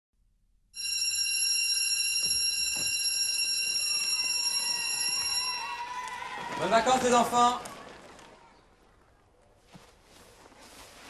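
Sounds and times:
high-pitched ringing tone: 0.8 - 5.7.

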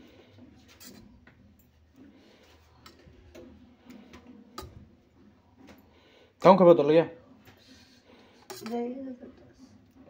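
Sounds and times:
spoon clicking against steel bowls: 8.5 - 8.8.

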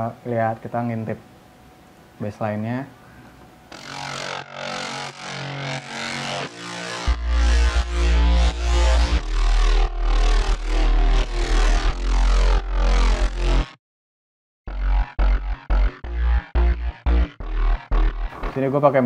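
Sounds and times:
pulsing synth chords: 3.6 - 13.8, 14.7 - 18.5
heavy sub-bass: 3.7 - 13.7, 14.7 - 18.7.

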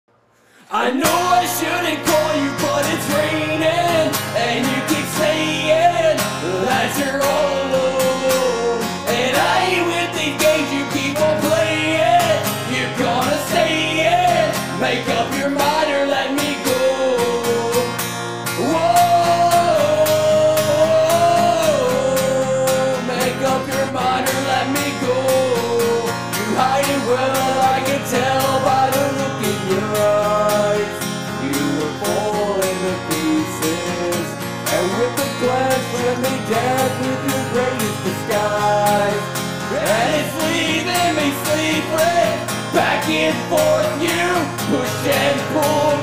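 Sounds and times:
acoustic guitar strumming: 0.4 - 46.0
man singing: 0.6 - 46.0.

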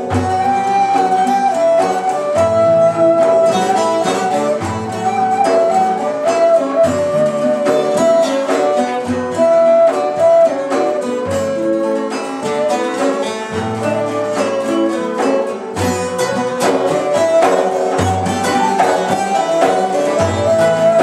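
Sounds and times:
flute melody: 0.0 - 21.0
frame drum strokes: 0.0 - 21.0
plucked lutes: 0.0 - 21.0.

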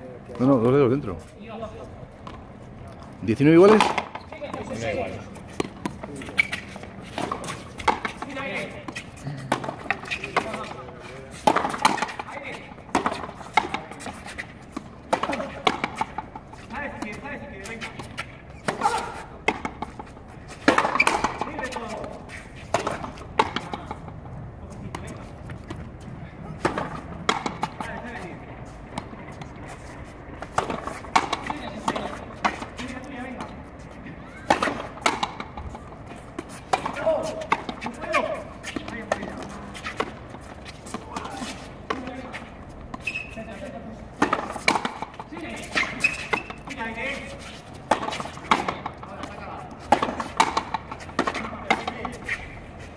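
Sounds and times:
players' voices: 0.0 - 52.9
ball cracking off rackets and wall: 11.4 - 16.2, 30.4 - 33.5, 47.8 - 52.3.

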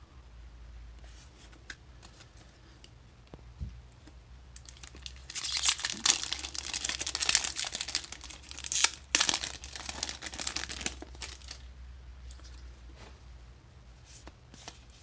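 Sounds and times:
foil wrapper tearing and crinkling: 4.6 - 11.7.

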